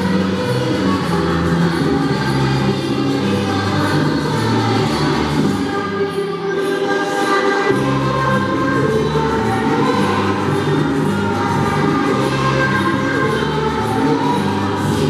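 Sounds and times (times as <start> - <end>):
children's choir singing carol: 0.0 - 15.0.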